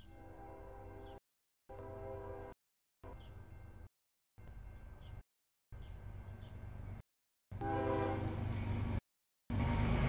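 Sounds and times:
locomotive horn chord: 0.2 - 2.6, 7.6 - 8.5
low train rumble: 5.8 - 10.0.

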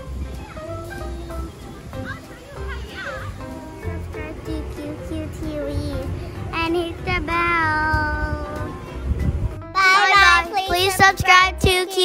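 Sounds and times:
background music: 0.0 - 12.0
child singing: 3.6 - 8.8, 9.8 - 12.0.

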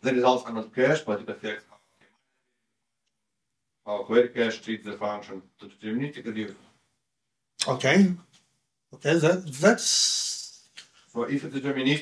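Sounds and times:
man speaking: 0.0 - 1.7, 3.9 - 6.6, 7.6 - 8.3, 9.0 - 12.0.

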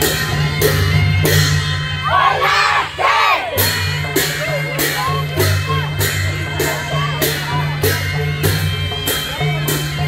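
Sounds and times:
low drone of drums: 0.0 - 10.0
crowd shouting and whooping: 2.0 - 3.7.

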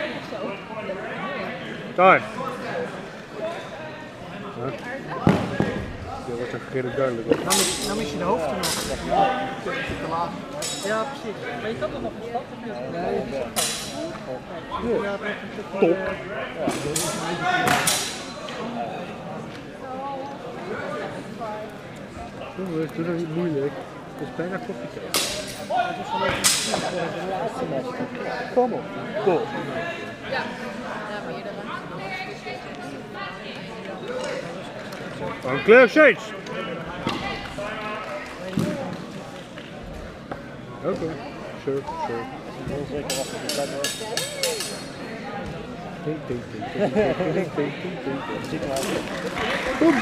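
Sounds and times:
people talking: 0.0 - 50.0.

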